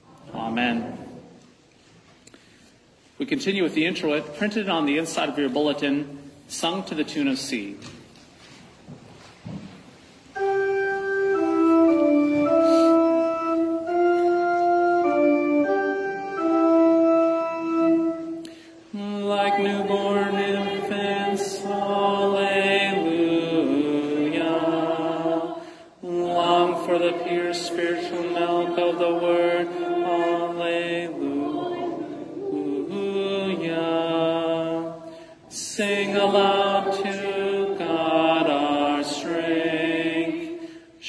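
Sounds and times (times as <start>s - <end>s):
church organ: 10.3s - 34.9s, 35.8s - 40.5s
congregation singing: 10.4s - 41.0s.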